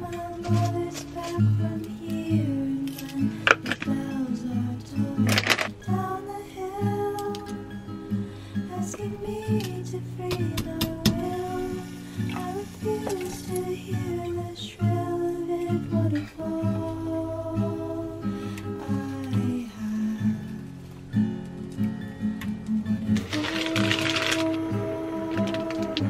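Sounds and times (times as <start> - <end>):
acoustic guitar background music: 0.0 - 26.0.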